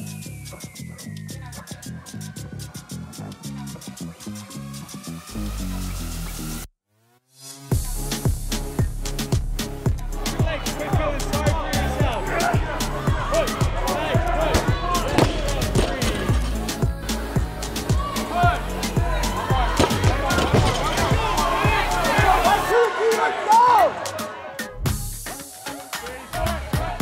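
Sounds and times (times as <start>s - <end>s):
music with heavy steady beat: 7.7s - 27.0s
vocal over music: 16.3s - 18.9s.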